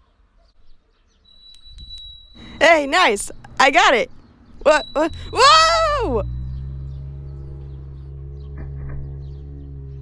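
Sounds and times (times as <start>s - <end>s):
small metal bell ringing: 1.2s - 6.4s.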